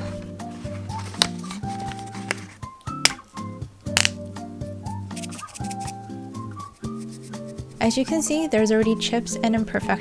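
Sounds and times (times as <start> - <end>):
background music: 0.0 - 10.0
plastic blister pack clicking: 1.1 - 3.3, 3.9 - 4.2.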